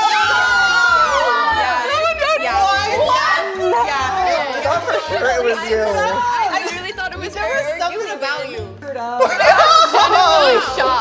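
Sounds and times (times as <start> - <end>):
people shrieking and cheering: 0.0 - 6.5, 9.2 - 11.0.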